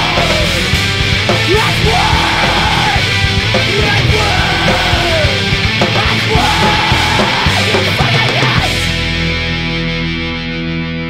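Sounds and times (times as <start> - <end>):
punk band final hit: 0.0 - 9.3
distorted electric guitar chord ringing: 0.0 - 11.0.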